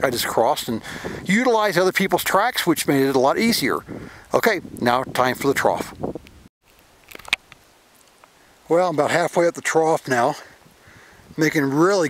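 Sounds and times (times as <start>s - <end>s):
man's voice: 0.0s - 5.9s, 8.7s - 10.5s, 11.4s - 12.0s
faint outdoor background noise: 0.0s - 12.0s.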